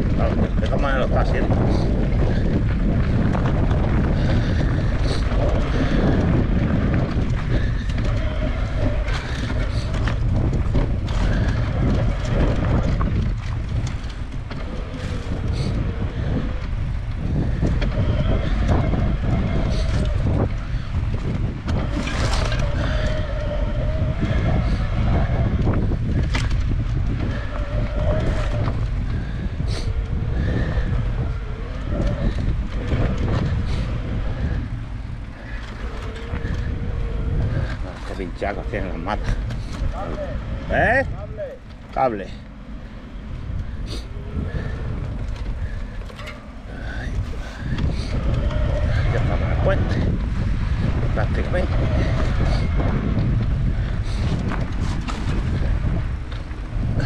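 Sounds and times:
bike rattles and knocks: 0.0 - 41.0, 41.6 - 57.0
bike tyre noise: 0.0 - 57.0
wind rumble on microphone: 0.0 - 57.0.

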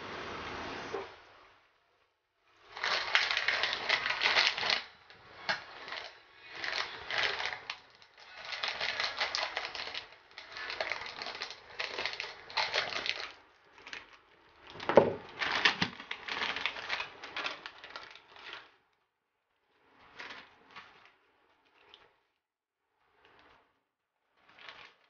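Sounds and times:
plastic packet crinkling: 2.6 - 18.7
scissors cutting plastic: 2.8 - 13.4.

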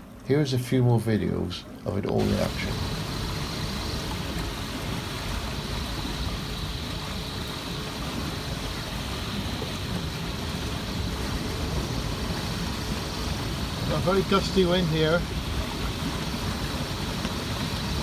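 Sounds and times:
water rushing past hull: 0.0 - 18.0
gusty wind buffeting microphone: 2.2 - 18.0.

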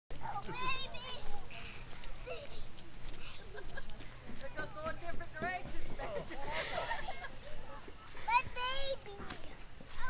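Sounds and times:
small children calling and chattering: 0.1 - 10.0.

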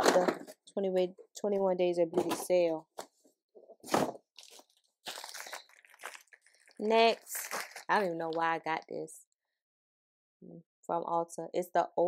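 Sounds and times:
packaging crinkling and rustling: 3.8 - 8.5.

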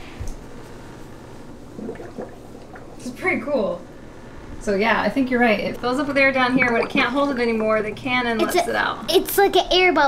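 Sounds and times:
aquarium air pump running: 0.0 - 10.0
air bubbling through water: 1.6 - 3.2.

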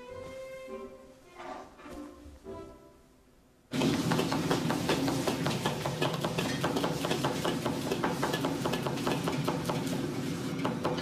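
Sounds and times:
kitchen burners and hoods humming: 0.0 - 11.0
cleavers chopping on boards: 3.8 - 10.0.

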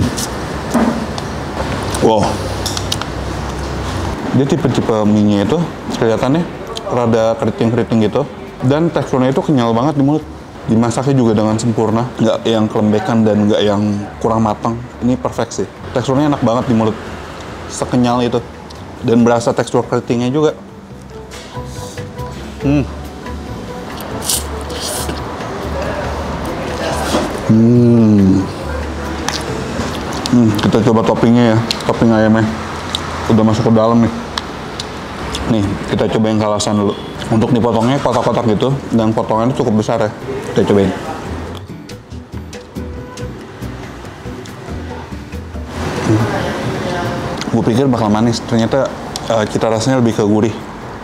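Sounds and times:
road traffic rumble: 0.0 - 51.0
noodles slurped: 24.0 - 25.3.

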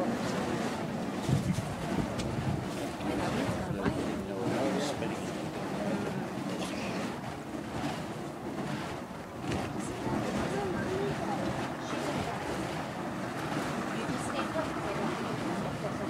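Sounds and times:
fire poi whooshing: 0.0 - 15.6.

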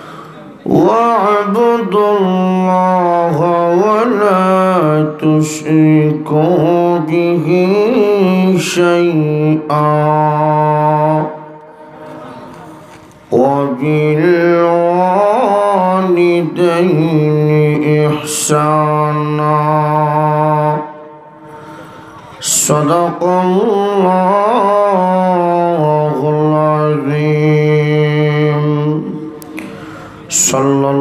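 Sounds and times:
man chanting into microphone: 0.0 - 21.5, 22.1 - 31.0.

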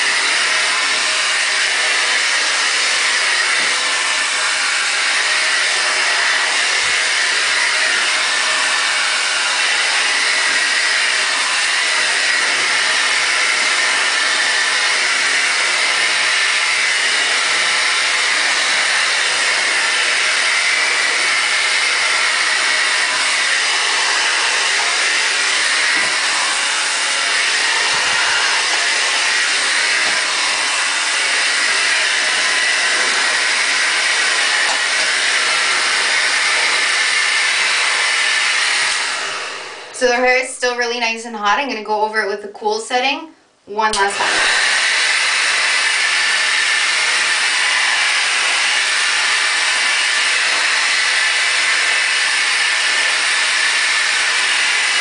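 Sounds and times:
hair dryer running: 0.0 - 41.0, 43.7 - 55.0.

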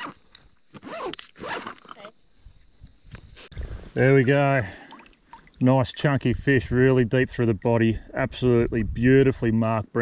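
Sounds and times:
backpack zip pulled open: 0.0 - 2.1.

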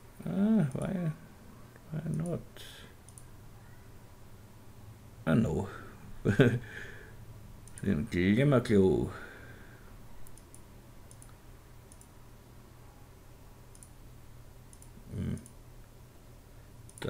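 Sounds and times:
low electrical hum: 0.0 - 17.0
faint computer mouse clicks: 3.1 - 3.3, 10.2 - 12.1, 13.7 - 14.0, 14.7 - 15.6.

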